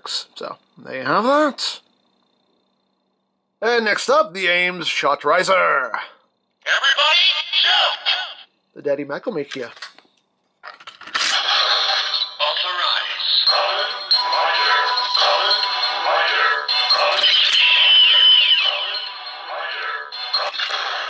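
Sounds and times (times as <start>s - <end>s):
electronic toy jingle: 11.6s - 21.0s.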